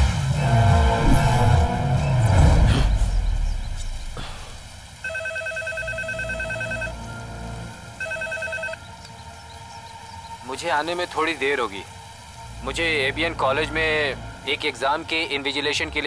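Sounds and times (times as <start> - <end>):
tense film music: 0.0 - 16.0
telephone ringing electronic trill: 5.0 - 7.0, 8.0 - 8.8.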